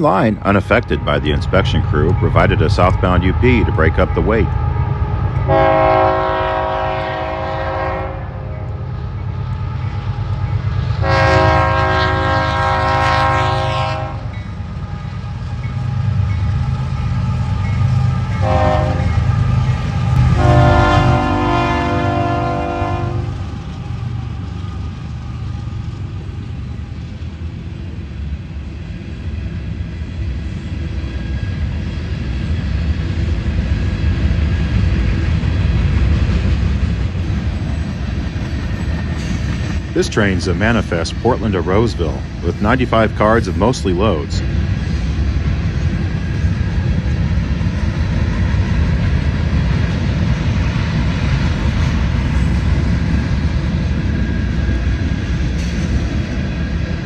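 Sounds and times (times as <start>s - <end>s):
diesel engines rumbling: 0.0s - 57.0s
locomotive air horn: 5.5s - 8.7s, 11.0s - 14.3s, 18.4s - 19.2s, 20.3s - 23.4s
freight cars rolling: 33.8s - 47.3s.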